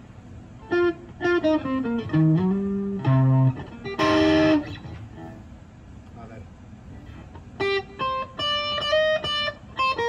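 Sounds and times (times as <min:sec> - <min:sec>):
electric guitar chord: 0:00.6 - 0:05.4, 0:07.6 - 0:10.0
faint guitar notes: 0:00.6 - 0:05.5, 0:06.9 - 0:10.0.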